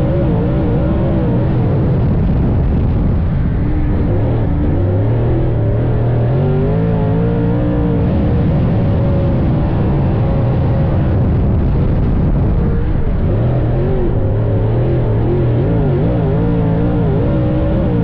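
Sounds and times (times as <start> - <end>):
race car engine revving: 0.0 - 18.0.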